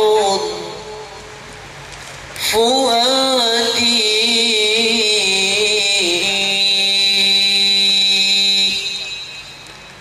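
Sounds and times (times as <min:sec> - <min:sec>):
high-pitched whine: 0:02.4 - 0:10.0
man chanting a long note: 0:03.6 - 0:09.6.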